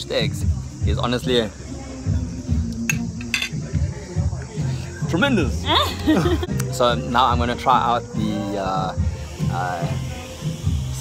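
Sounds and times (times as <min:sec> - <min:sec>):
faint background music: 0:00.0 - 0:11.0
cutlery clinking on a plate: 0:02.9 - 0:03.6.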